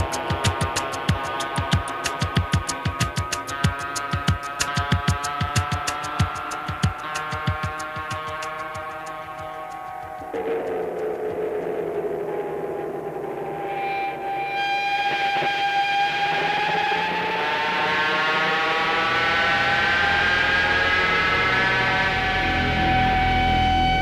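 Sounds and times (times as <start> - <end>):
gliding synthesizer tones: 0.0 - 24.0
low drone: 8.4 - 24.0.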